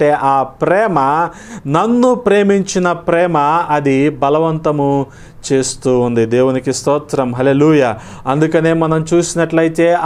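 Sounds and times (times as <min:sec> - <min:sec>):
man preaching: 0:00.0 - 0:10.0.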